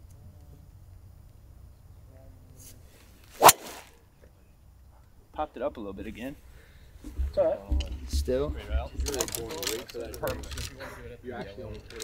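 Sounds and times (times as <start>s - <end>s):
golf club swish: 3.3s - 4.0s
clubhead striking golf ball: 3.4s - 4.0s.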